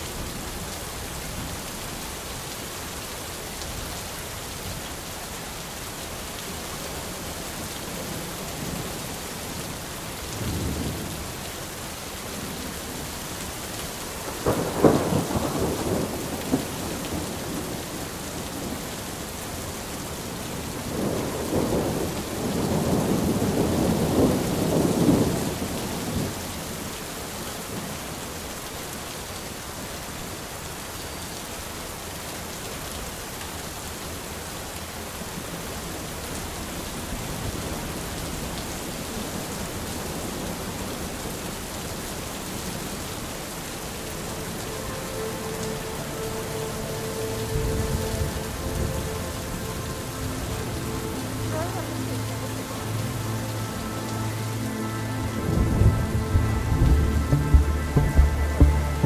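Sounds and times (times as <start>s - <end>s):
steady rain: 0.0s - 59.0s
thunder rumbling: 14.2s - 18.0s, 55.4s - 59.0s.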